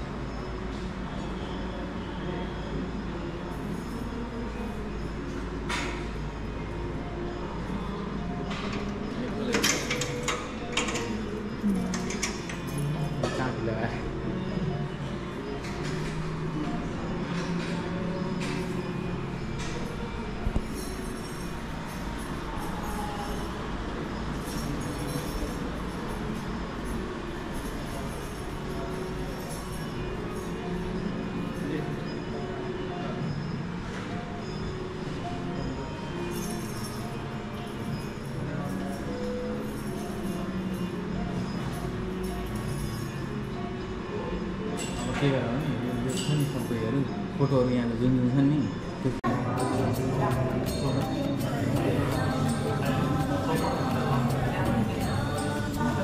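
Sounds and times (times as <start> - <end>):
murmur of voices: 0.0 - 56.0.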